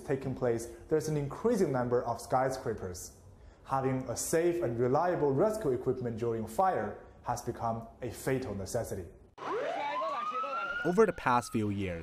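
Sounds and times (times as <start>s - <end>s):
emergency siren wailing: 9.4s - 12.0s.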